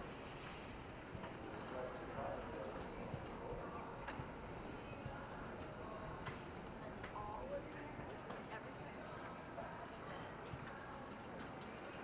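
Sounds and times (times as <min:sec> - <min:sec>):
murmur of voices: 0:01.1 - 0:12.0.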